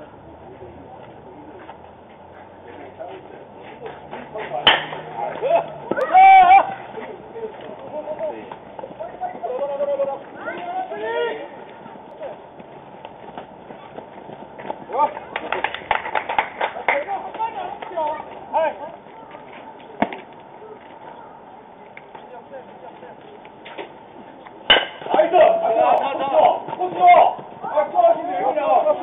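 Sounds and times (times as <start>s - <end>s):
players shouting: 4.4s - 12.5s, 24.7s - 29.0s
bat cracking ball: 4.6s - 6.2s, 24.7s - 25.3s.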